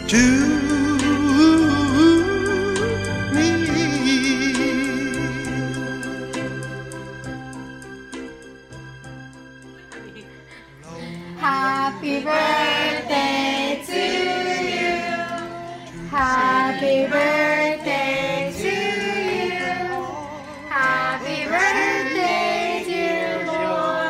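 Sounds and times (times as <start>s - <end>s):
group singing birthday song: 10.7s - 24.0s.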